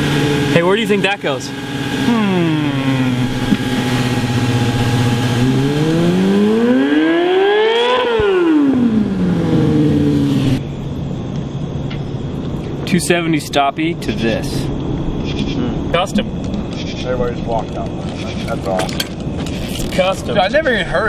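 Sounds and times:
motorcycle engine idling and revving: 0.0s - 12.8s
quieter different engine: 0.0s - 21.0s.

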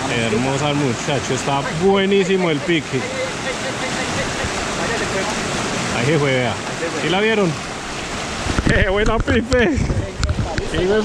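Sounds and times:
river rapids rushing over rocks: 0.0s - 11.0s.

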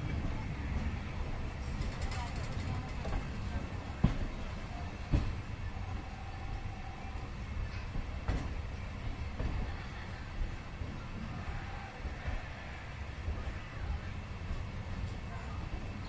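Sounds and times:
train wheels rumbling: 0.0s - 16.0s.

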